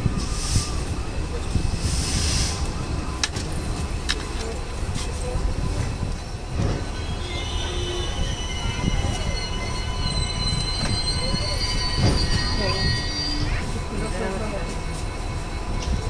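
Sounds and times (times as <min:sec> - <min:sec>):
train coaches rumbling on track: 0:00.0 - 0:16.0
high wheel squeal: 0:06.5 - 0:16.0.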